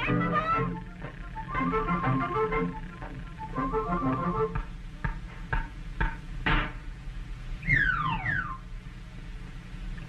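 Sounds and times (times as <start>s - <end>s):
soundtrack hum and hiss: 0.0s - 10.0s
cartoon whistle sliding down: 7.6s - 8.6s.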